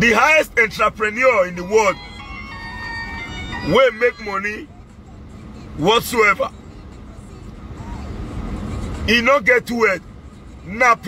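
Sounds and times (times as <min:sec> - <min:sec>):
car rumble from inside cabin: 0:00.0 - 0:11.0.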